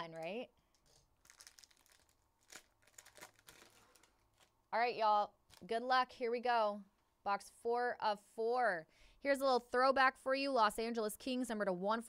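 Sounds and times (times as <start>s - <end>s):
packaging crinkling and crackling: 0.0s - 4.6s, 5.4s - 5.7s.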